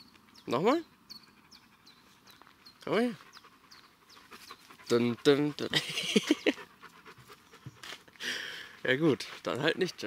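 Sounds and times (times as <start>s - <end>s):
dog panting: 0.8s - 10.0s.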